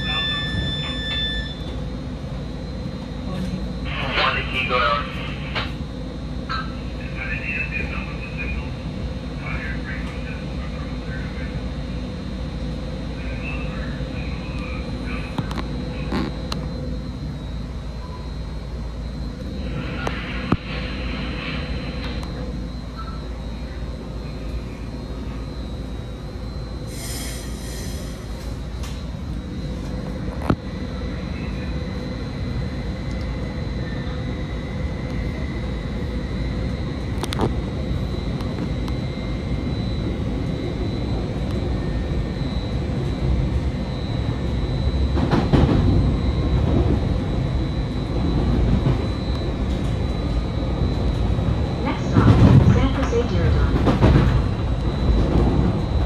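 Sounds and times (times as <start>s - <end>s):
faint whine tones: 0.0s - 53.7s, 54.4s - 56.0s
train rumble: 0.0s - 56.0s.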